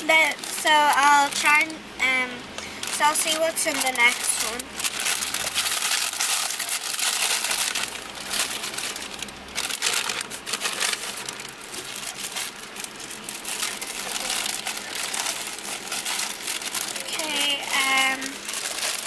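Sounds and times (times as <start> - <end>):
paper wrapper crinkling: 0.0 - 1.8, 2.6 - 19.0.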